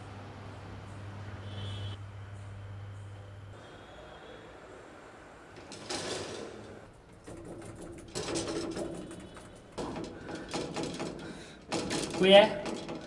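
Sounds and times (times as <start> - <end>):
faint hum: 0.0 - 5.6
cage lift metallic rattling: 5.5 - 13.0.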